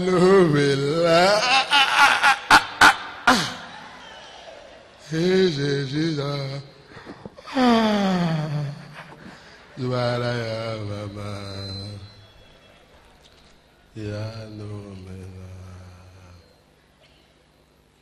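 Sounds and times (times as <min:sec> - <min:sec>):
man groaning into microphone: 0:00.0 - 0:02.4, 0:07.4 - 0:09.0.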